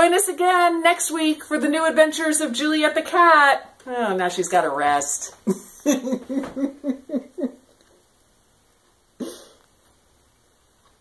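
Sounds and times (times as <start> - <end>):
woman laughing: 5.4 - 7.8.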